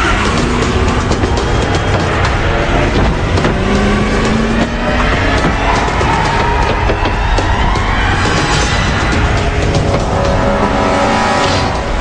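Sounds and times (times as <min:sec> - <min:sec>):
action music: 0:00.0 - 0:12.0
car engine and tyre noise: 0:00.0 - 0:12.0.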